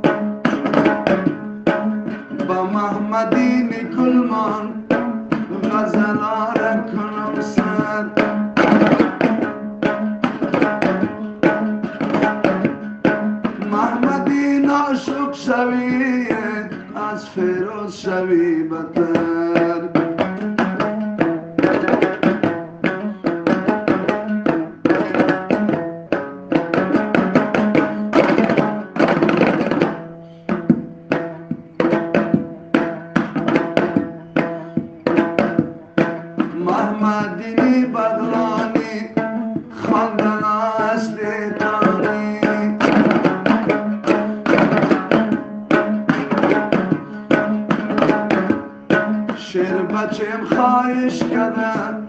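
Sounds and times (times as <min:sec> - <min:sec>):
lute strummed fast: 0:00.0 - 0:52.0
percussion: 0:00.0 - 0:52.0.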